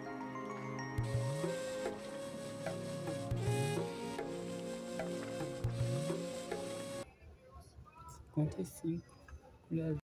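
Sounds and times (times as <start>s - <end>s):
background music with held notes: 0.0s - 7.0s.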